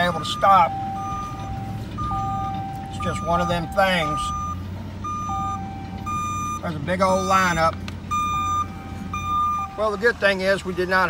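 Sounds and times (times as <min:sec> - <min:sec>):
low engine hum: 0:00.0 - 0:11.0
truck reversing alarms beeping: 0:00.0 - 0:11.0.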